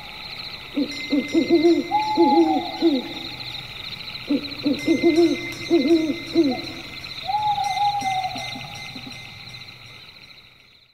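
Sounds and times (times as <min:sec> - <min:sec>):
bird hooting: 0:00.8 - 0:03.4, 0:04.3 - 0:09.2.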